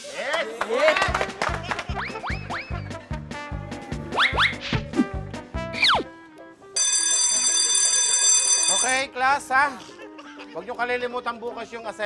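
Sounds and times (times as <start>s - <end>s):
school bell ringing: 6.8s - 9.1s.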